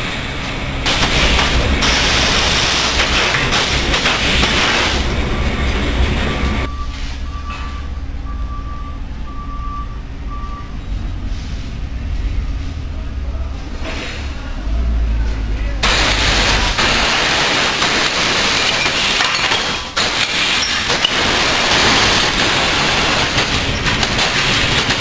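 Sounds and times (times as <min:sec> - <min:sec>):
loud rushing hiss: 0:00.0 - 0:06.7, 0:15.8 - 0:25.0
low steady factory rumble: 0:00.0 - 0:25.0
vehicle backup alarm beeping: 0:05.2 - 0:10.9.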